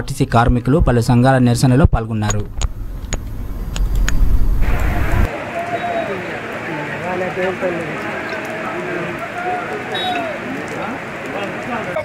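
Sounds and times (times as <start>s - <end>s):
sharp clicks: 2.2s - 5.0s
street noise rumble: 2.3s - 12.0s.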